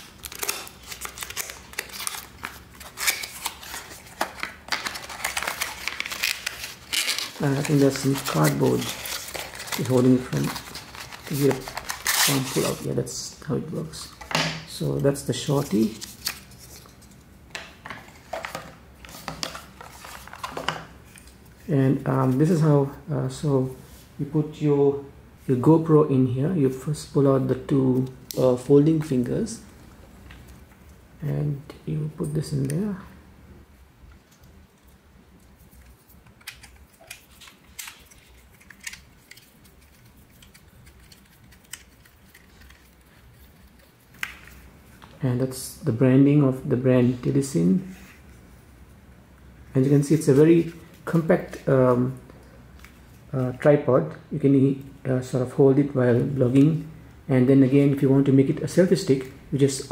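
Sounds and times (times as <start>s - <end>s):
cardboard rustling: 0.0s - 12.9s.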